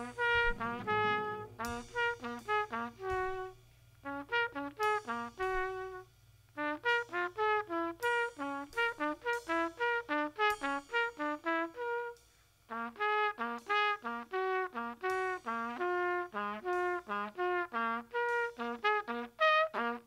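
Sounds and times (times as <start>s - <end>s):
drum kit with cymbals: 0.0s - 20.0s
trumpet playing free jazz: 0.0s - 20.0s.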